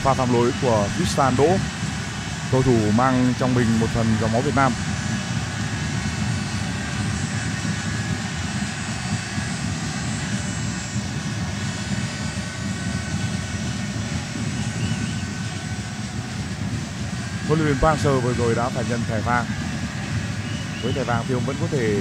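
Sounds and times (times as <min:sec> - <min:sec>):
stadium crowd roar: 0:00.0 - 0:22.0.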